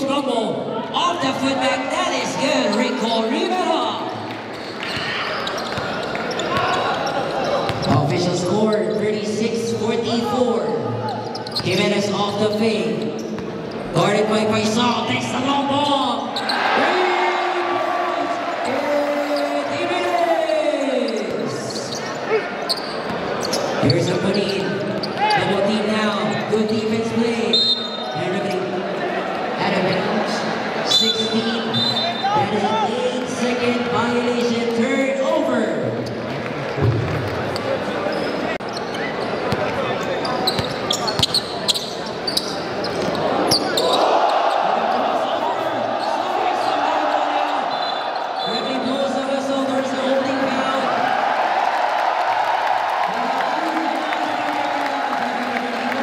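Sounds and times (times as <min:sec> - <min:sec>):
crowd cheering: 0:04.2 - 0:08.0, 0:16.4 - 0:21.6, 0:43.0 - 0:56.0
shoe squeaks: 0:04.5 - 0:08.1, 0:11.0 - 0:11.8, 0:12.5 - 0:14.0, 0:20.8 - 0:25.5, 0:38.0 - 0:44.1.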